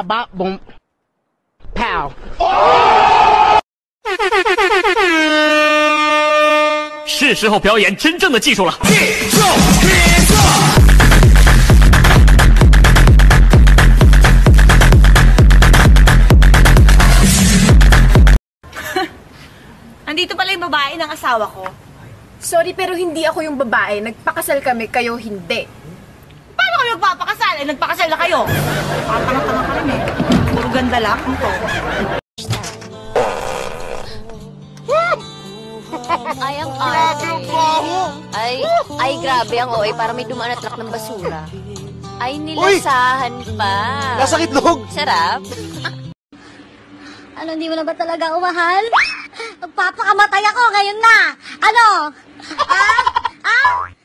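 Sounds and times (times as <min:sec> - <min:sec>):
background music: 0:08.8 - 0:18.3, 0:28.3 - 0:30.2, 0:34.3 - 0:46.1
raspy fart sound: 0:33.1 - 0:34.3.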